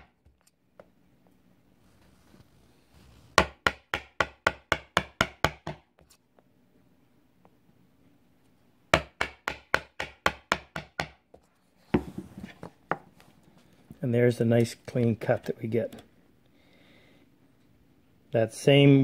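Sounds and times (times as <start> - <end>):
mallet tapping chisel: 3.4 - 5.8, 8.9 - 11.2.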